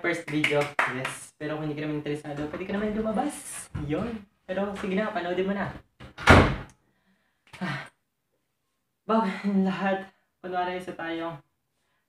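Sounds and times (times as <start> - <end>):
wooden door slamming: 6.0 - 6.7.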